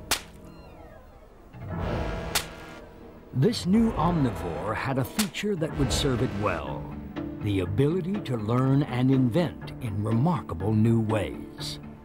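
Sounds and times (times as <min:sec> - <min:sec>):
sharp crack: 0:00.0 - 0:00.5, 0:02.2 - 0:02.8, 0:05.1 - 0:06.8.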